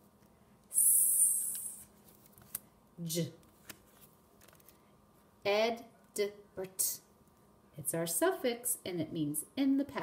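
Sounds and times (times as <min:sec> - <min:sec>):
paper flashcards rustling: 0:01.9 - 0:02.7, 0:03.4 - 0:04.8.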